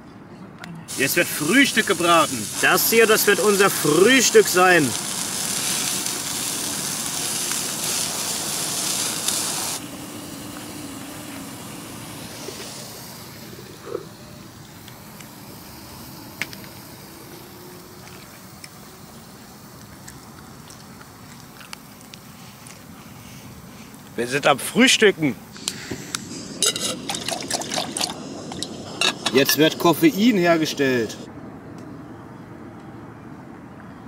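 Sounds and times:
gas torch hissing: 0.9s - 21.2s, 22.2s - 31.3s
quiet hiss: 0.9s - 31.3s.

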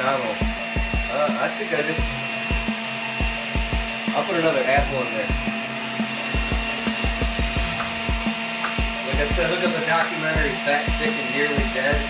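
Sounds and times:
juicer motor whine: 0.0s - 12.0s.

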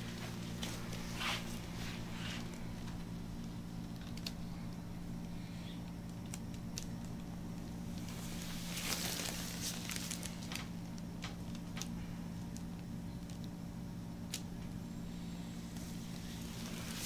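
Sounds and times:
oiled hands kneading skin: 0.0s - 4.4s, 5.8s - 11.7s, 15.5s - 17.0s
low hum: 0.0s - 17.0s.

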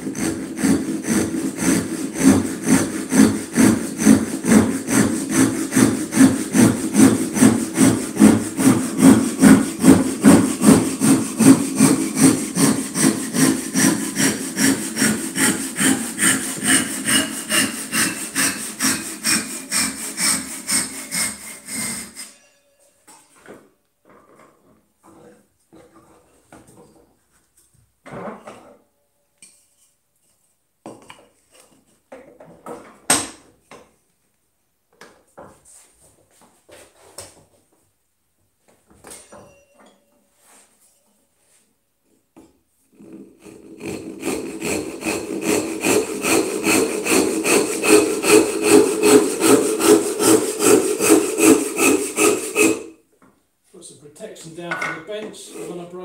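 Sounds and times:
hand saw cutting wood: 0.0s - 22.4s, 42.9s - 53.0s, 54.3s - 56.0s.

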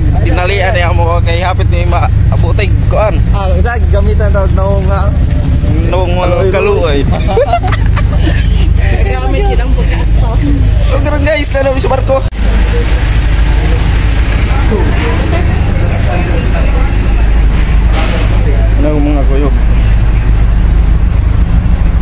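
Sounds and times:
people talking: 0.0s - 20.7s
loud low rumble: 0.0s - 22.0s.

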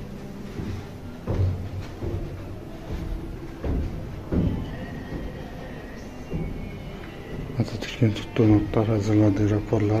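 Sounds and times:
footsteps on carpet: 0.0s - 9.7s.

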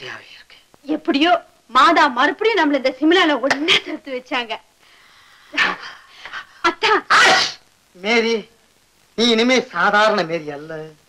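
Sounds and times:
man sneezing: 7.1s - 7.6s.

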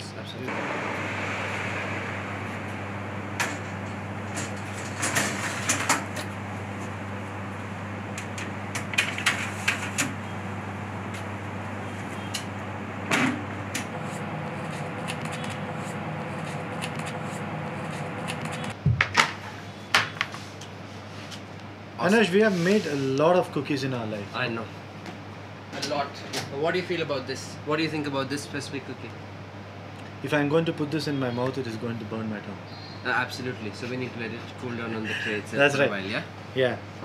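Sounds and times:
steady low hum: 0.0s - 25.7s
oven door shutting: 0.5s - 18.8s.

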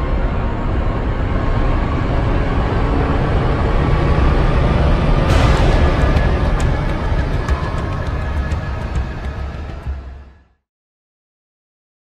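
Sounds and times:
deep rushing noise: 0.0s - 10.6s.

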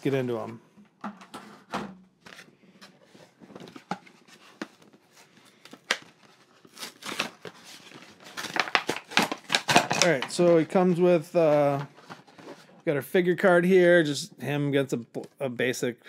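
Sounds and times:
cardboard and plastic packaging crackling: 3.3s - 12.7s.

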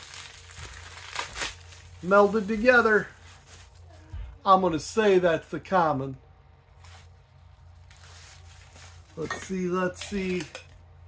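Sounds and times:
faint rustling and handling: 0.0s - 4.5s, 6.6s - 10.8s
low steady hum: 0.0s - 11.0s.

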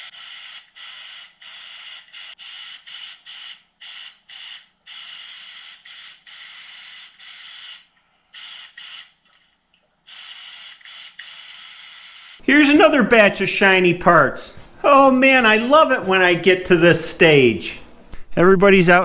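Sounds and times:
spray gun hissing bursts: 0.0s - 9.2s, 10.1s - 12.4s.

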